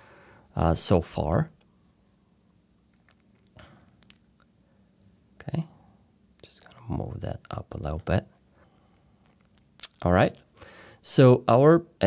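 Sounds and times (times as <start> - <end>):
person speaking: 6.4 - 8.3, 9.8 - 12.0.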